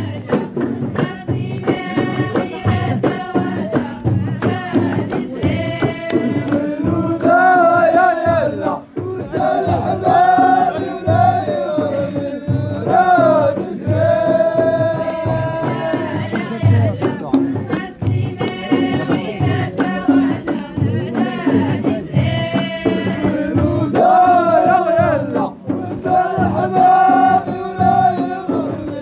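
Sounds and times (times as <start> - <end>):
frame drums beating: 0.0 - 29.0
voices chanting together: 0.0 - 29.0
sharp hand claps: 5.8 - 6.7.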